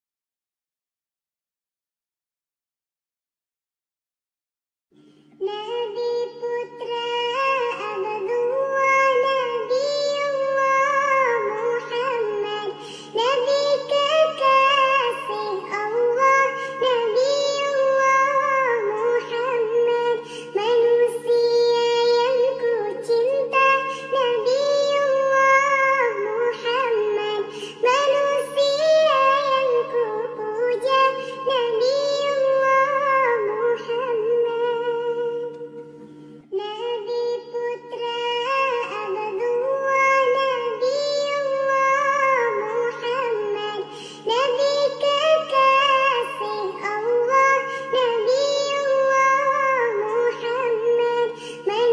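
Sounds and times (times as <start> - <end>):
high childlike singing voice: 5.4 - 35.6, 36.5 - 51.9.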